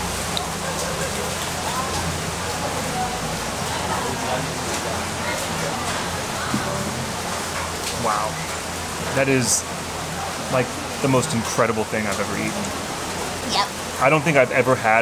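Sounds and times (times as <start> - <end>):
faint voices talking: 0.0 - 15.0.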